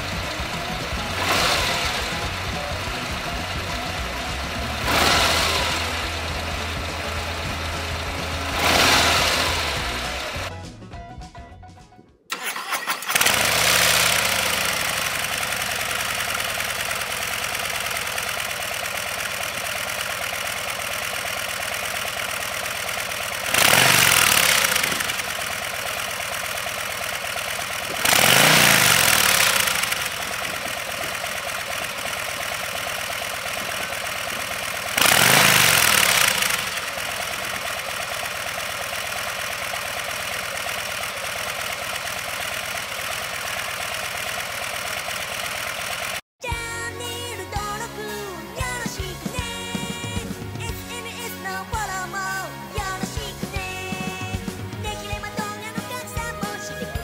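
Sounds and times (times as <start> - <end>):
motorcycle engine revving: 0.0 - 10.5, 12.3 - 46.2, 47.6 - 57.0
motorcycle engine starting and idling: 0.0 - 10.6, 12.3 - 57.0.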